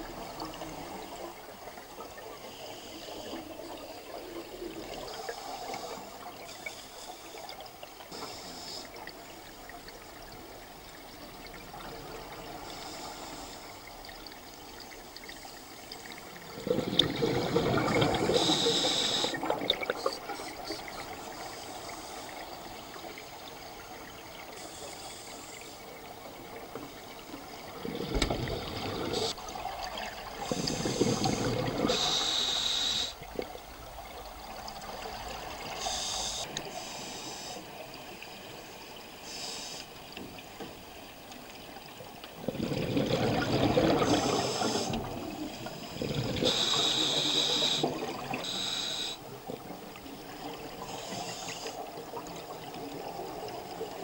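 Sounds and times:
exhaled bubbles gurgling: 0:08.9 - 0:24.6, 0:25.9 - 0:36.5, 0:41.7 - 0:54.0
scuba regulator breathing: 0:18.2 - 0:19.5, 0:30.4 - 0:33.2, 0:35.8 - 0:37.7, 0:39.2 - 0:39.9, 0:44.0 - 0:45.1, 0:46.2 - 0:49.2, 0:50.8 - 0:51.9.

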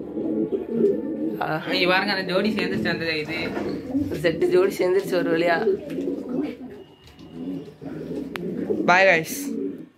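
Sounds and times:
pigeons cooing: 0:00.0 - 0:09.9.

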